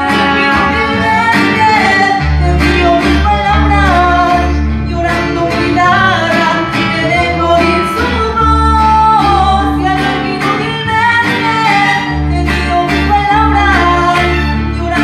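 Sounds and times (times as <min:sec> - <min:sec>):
mariachi band playing: 0:00.0 - 0:15.0
woman singing: 0:00.0 - 0:15.0.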